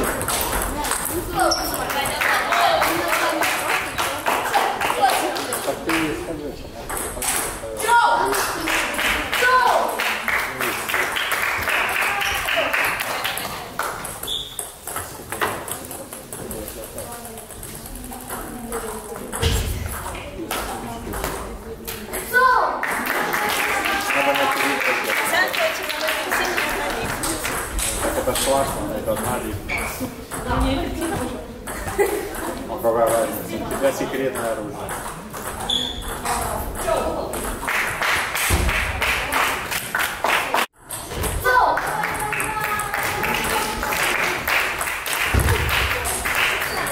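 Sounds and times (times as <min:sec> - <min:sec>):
table tennis bats striking ball: 0:00.0 - 0:01.9, 0:06.8 - 0:07.6, 0:12.9 - 0:17.6, 0:33.0 - 0:39.3
table tennis balls clicking: 0:00.0 - 0:05.8, 0:12.3 - 0:22.3, 0:25.8 - 0:38.0
ball bouncing on table: 0:13.8 - 0:16.8, 0:18.2 - 0:21.4.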